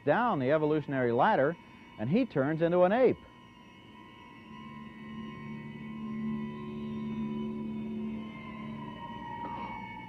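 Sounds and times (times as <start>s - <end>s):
deeper tone: 0.0s - 10.0s
high tone drone: 0.0s - 10.0s.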